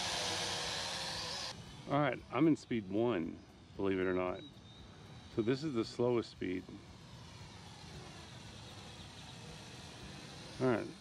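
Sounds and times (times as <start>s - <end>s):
drone propellers buzzing: 0.0s - 11.0s
outdoor air hiss: 0.0s - 11.0s.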